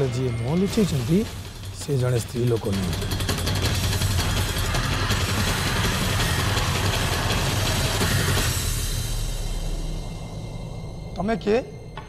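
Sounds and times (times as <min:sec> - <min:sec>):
dramatic rumbling drone score: 0:00.0 - 0:12.0.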